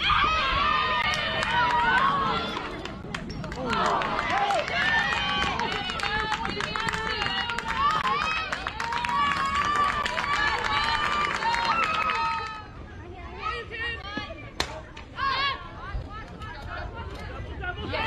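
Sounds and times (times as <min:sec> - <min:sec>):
crowd cheering and shouting: 0:00.0 - 0:12.8.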